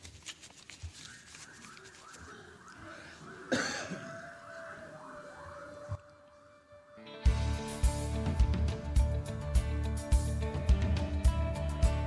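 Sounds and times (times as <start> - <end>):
sharp cough: 3.5 - 4.3.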